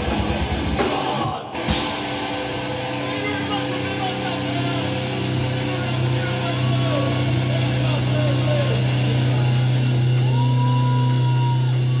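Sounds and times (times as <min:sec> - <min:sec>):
live rock band playing: 0:00.0 - 0:12.0
bending electric guitar notes: 0:01.5 - 0:12.0.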